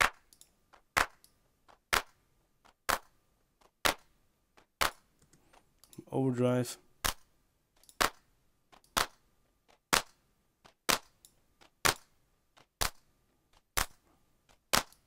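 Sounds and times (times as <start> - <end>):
distorted electronic clap: 0.0 - 0.3, 0.9 - 2.2, 2.8 - 3.2, 3.8 - 4.1, 9.9 - 10.2.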